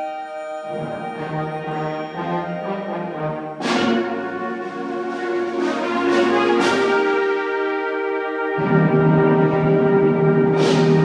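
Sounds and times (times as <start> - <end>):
symphonic band playing: 0.0 - 11.0.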